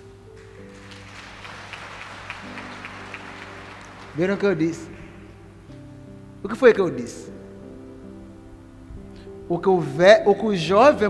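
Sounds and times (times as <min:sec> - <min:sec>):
soft background music: 0:00.0 - 0:11.0
congregation clapping: 0:00.4 - 0:05.8.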